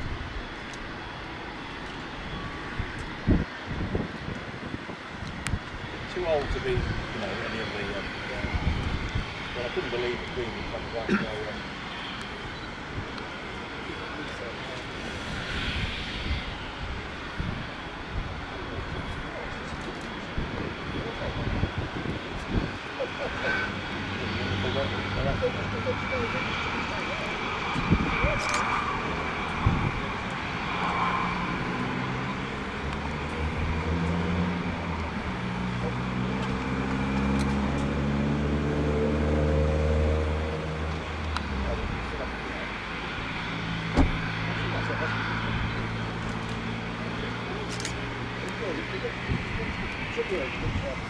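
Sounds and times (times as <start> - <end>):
engine rumbling and revving up: 18.6 - 51.0.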